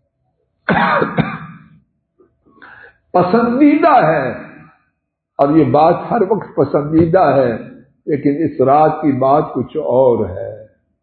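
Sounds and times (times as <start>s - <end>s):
man clearing his throat: 0.7s - 1.8s.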